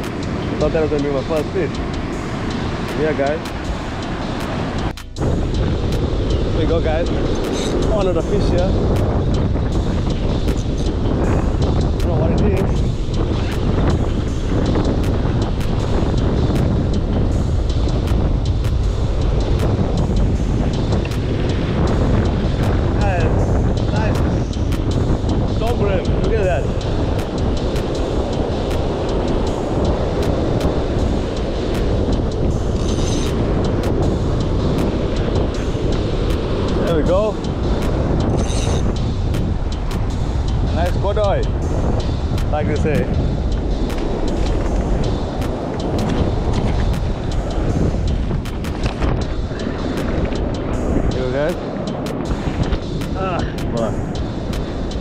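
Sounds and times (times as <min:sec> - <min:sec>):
surf washing over rocks: 0:00.0 - 0:55.0
wind buffeting microphone: 0:00.0 - 0:55.0.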